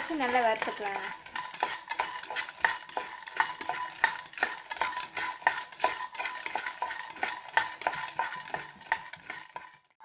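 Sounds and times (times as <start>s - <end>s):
spatula knocking and scraping pan: 0.0s - 10.0s.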